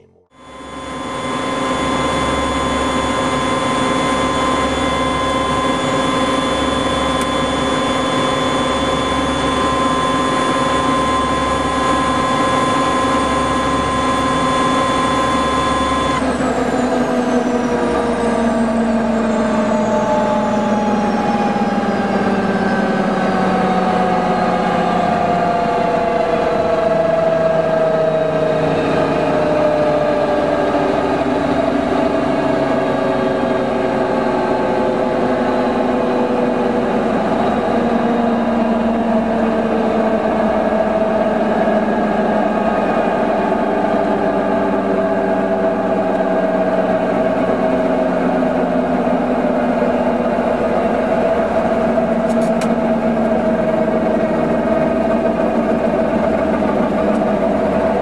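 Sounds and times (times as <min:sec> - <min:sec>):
helicopter turbine whine: 0:00.0 - 0:58.0.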